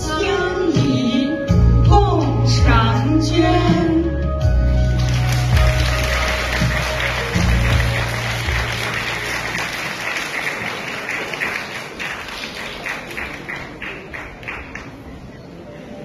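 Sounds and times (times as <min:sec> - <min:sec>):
low backing music: 0:00.0 - 0:10.1
audience applauding: 0:05.0 - 0:15.2.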